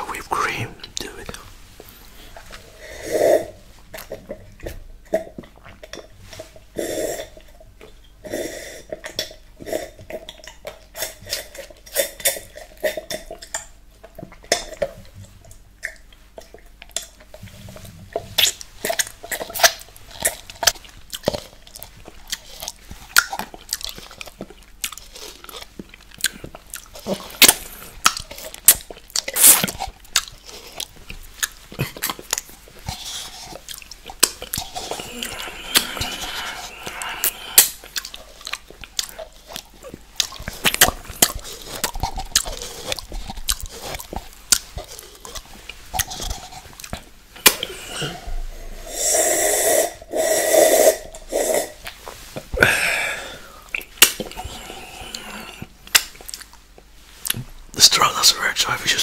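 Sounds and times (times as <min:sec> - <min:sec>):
man slurping: 0:34.6 - 0:37.9, 0:47.4 - 0:55.8.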